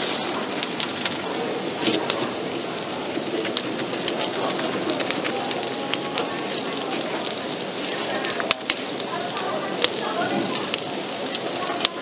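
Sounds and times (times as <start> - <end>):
food sizzling with crackling pops: 0.0 - 12.0.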